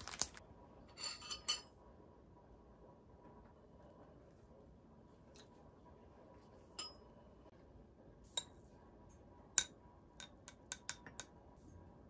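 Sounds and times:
metal spoon clinking on mug: 6.8 - 7.1.

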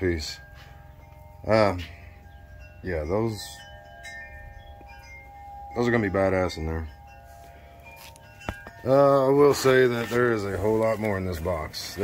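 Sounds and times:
chime-like ringing tones: 0.0 - 12.0.

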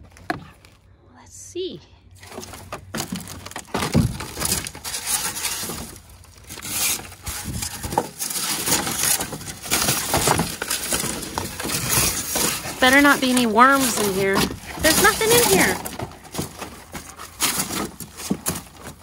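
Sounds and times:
dog claws scraping plastic: 2.2 - 19.0
foam pieces crunching and squeaking: 2.2 - 19.0.

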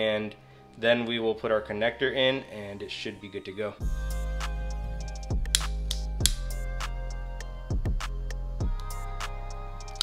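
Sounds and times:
background music: 0.0 - 10.0
low bass notes: 3.8 - 10.0.

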